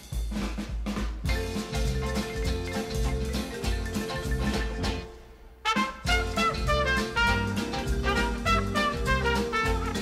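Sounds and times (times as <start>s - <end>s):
drum kit beat: 0.0s - 10.0s
swing jazz music with brass: 0.0s - 10.0s.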